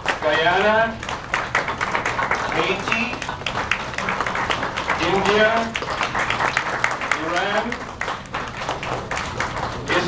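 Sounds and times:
people clapping: 0.0s - 10.0s.

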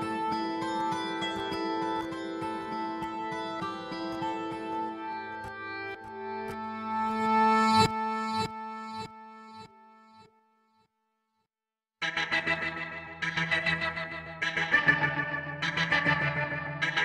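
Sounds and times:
acoustic guitar plucked notes: 0.0s - 9.0s.

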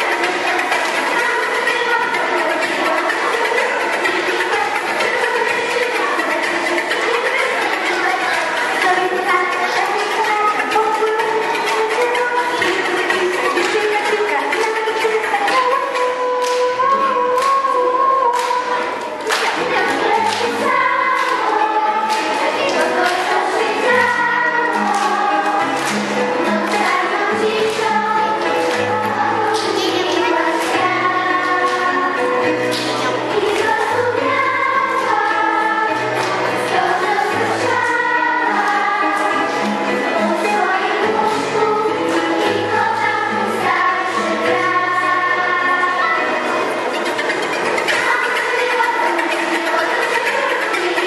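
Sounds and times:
children's choir singing: 0.0s - 51.0s
low instrumental accompaniment: 0.0s - 51.0s.

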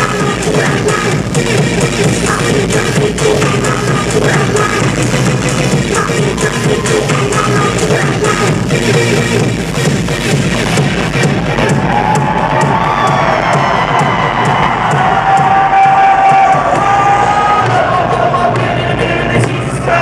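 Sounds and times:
electronic rap-rave music: 0.0s - 20.0s
crowd cheering: 6.1s - 7.8s, 11.3s - 20.0s.

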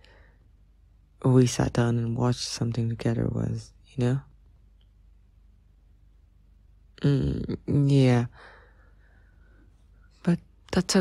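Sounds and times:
man speaking: 1.2s - 4.3s, 7.0s - 8.5s.

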